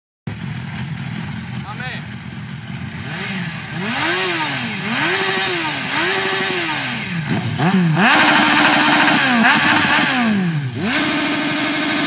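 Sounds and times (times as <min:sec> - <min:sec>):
motorcycle engine revving: 0:00.3 - 0:12.0.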